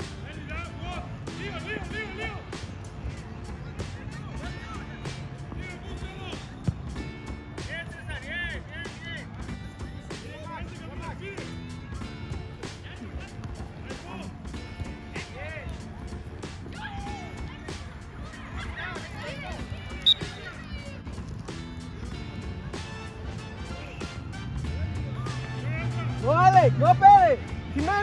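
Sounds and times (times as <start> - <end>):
music playing: 0.0 - 28.0
spectators calling and shouting: 0.0 - 28.0.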